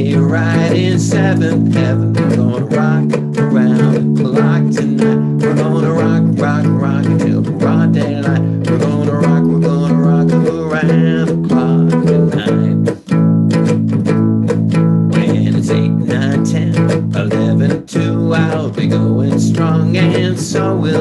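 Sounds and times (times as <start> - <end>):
cigar box guitar strumming: 0.0 - 21.0.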